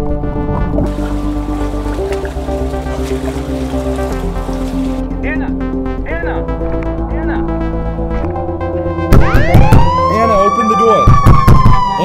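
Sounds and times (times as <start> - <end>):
emergency vehicle siren wailing: 9.1 - 12.0.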